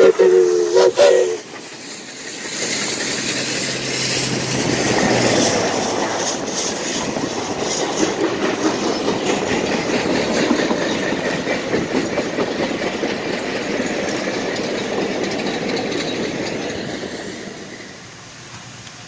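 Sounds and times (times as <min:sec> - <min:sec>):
train wheels clattering over rail joints: 0:01.0 - 0:19.0.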